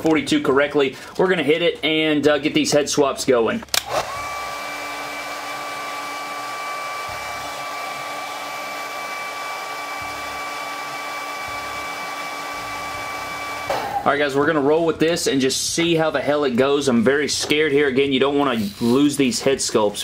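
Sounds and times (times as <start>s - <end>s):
hair dryer running: 3.8s - 14.0s.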